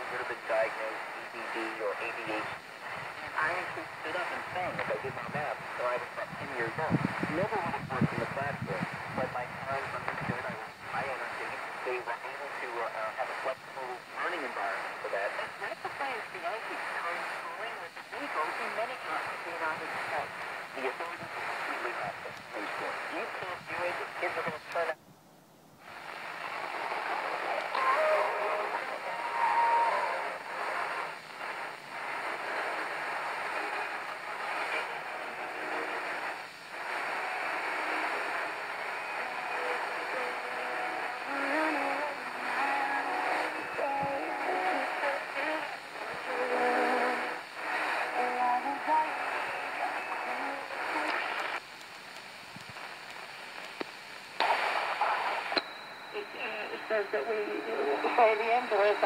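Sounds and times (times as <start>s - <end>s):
faint radio voice: 0.0s - 25.0s, 26.3s - 51.6s, 54.5s - 59.0s
radio hiss and static: 0.0s - 59.0s.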